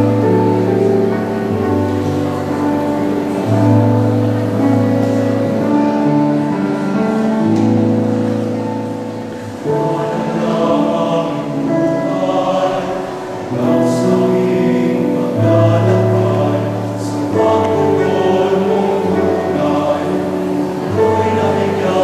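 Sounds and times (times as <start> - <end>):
male choir singing a hymn: 9.4 - 22.0.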